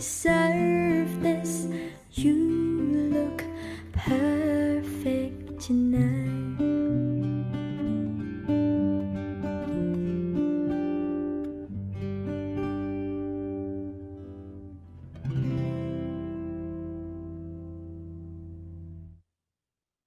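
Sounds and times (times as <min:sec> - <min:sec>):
acoustic guitar music: 0:00.0 - 0:19.2.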